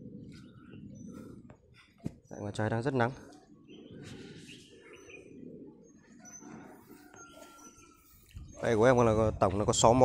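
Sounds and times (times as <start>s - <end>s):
birds chirping faintly: 0.0s - 10.0s.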